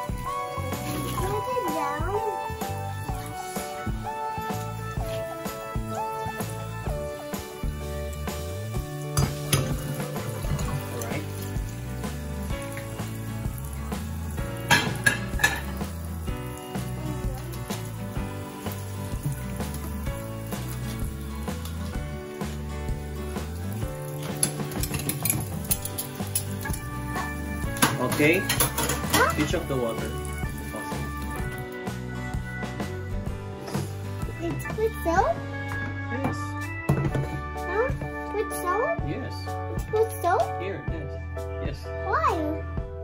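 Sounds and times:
background music: 0:00.0 - 0:43.0
dishes clinking in sink: 0:09.1 - 0:11.2, 0:14.6 - 0:15.9, 0:24.2 - 0:30.5.

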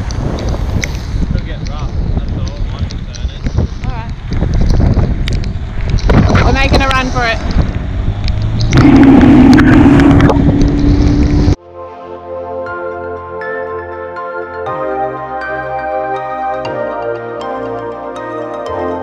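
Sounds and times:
wind buffeting microphone: 0:00.0 - 0:11.6
music: 0:11.6 - 0:19.0.

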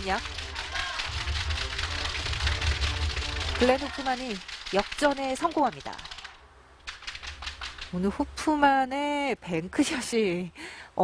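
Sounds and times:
rapid hand claps: 0:00.0 - 0:08.0.

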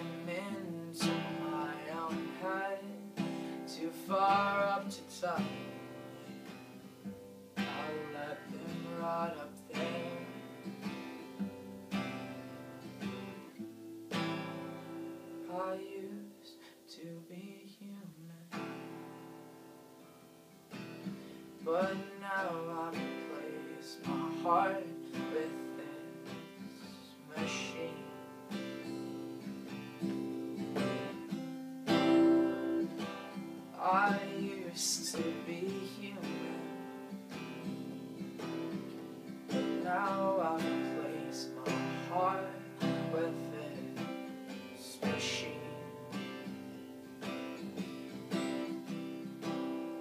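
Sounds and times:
acoustic guitar strumming: 0:00.0 - 0:50.0.

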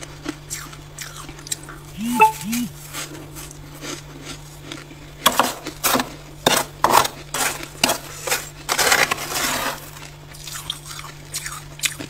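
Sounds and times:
frost being scraped: 0:07.4 - 0:10.0.

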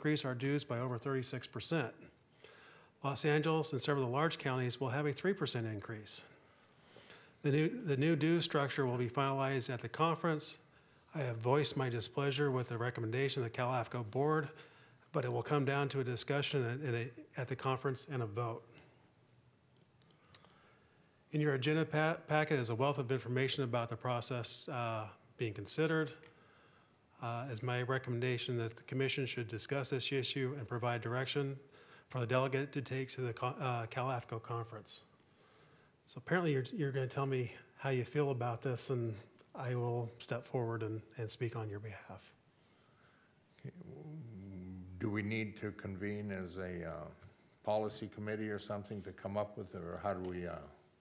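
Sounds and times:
man speaking into a microphone: 0:00.0 - 0:02.2, 0:03.0 - 0:06.4, 0:07.4 - 0:19.0, 0:21.3 - 0:26.3, 0:27.2 - 0:35.1, 0:36.0 - 0:42.4, 0:43.5 - 0:50.9
man humming hesitantly: 0:43.7 - 0:45.2.

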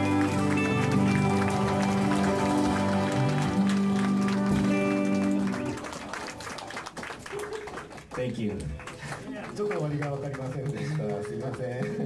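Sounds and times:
live rock band: 0:00.0 - 0:06.6
light clapping: 0:00.0 - 0:12.0.

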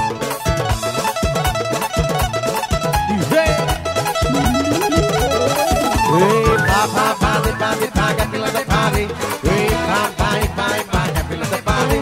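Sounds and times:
pop band playing live: 0:00.0 - 0:12.0.

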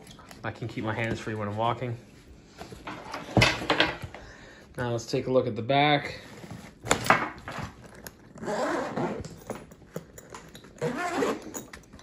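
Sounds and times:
zipper being pulled open: 0:07.8 - 0:11.7.

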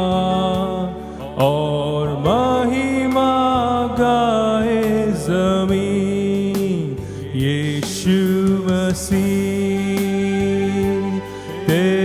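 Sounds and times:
backing music: 0:00.0 - 0:12.0
man singing into microphone: 0:00.0 - 0:12.0.

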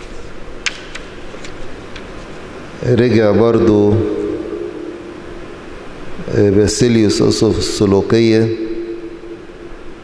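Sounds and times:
faint held tone: 0:03.9 - 0:05.8, 0:08.5 - 0:10.0.

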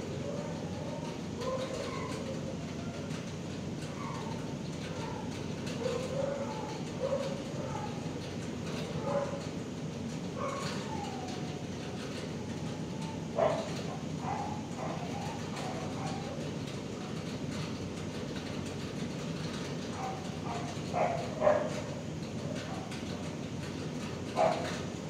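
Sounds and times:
steady low hum: 0:00.0 - 0:25.0
dogs barking: 0:00.2 - 0:02.2, 0:04.9 - 0:08.1, 0:08.8 - 0:09.5, 0:10.4 - 0:11.5, 0:13.0 - 0:16.4, 0:19.9 - 0:23.2, 0:24.3 - 0:24.8
dog whining: 0:10.4 - 0:16.4.

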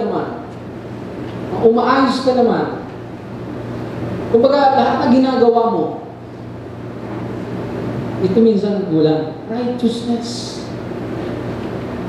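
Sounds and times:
constant low hum: 0:00.0 - 0:12.0.

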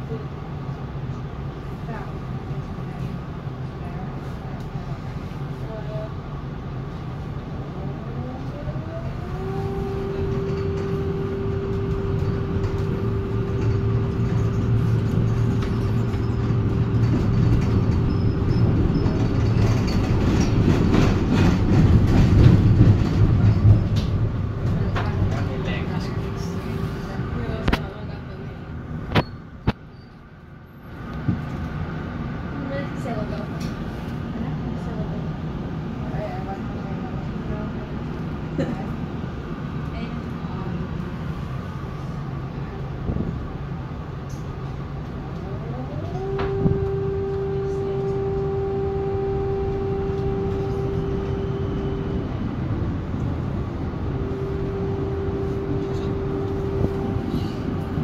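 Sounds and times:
rumble of wheels on rails: 0:00.0 - 0:58.0
tram motor whine: 0:00.2 - 0:58.0.

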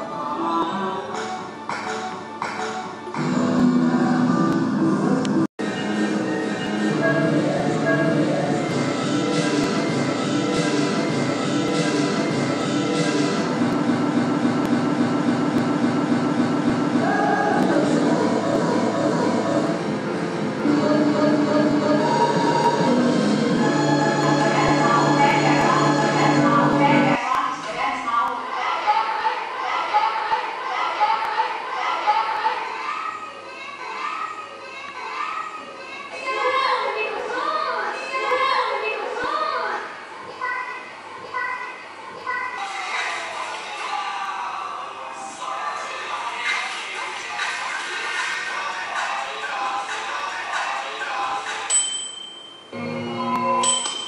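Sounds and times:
low machine-like drone: 0:07.0 - 0:27.2.

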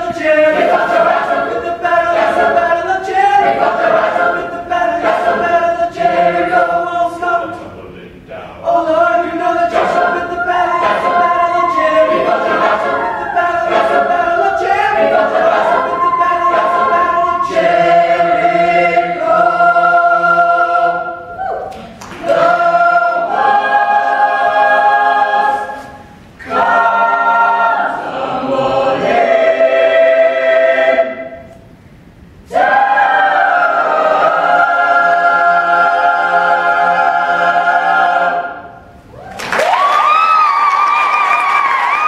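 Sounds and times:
choir singing a cappella: 0:00.0 - 0:07.8, 0:08.5 - 0:31.7, 0:32.4 - 0:39.0.

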